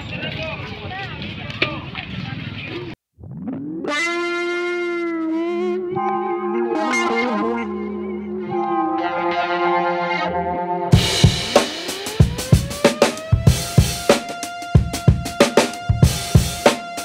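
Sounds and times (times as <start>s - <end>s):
crowd chatter: 0.0s - 3.0s
background music: 4.5s - 17.0s.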